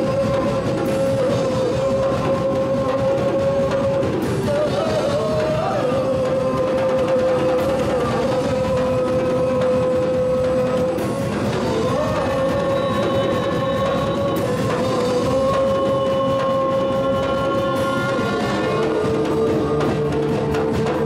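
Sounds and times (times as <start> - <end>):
drum kit with cymbal crashes: 0.0 - 21.0.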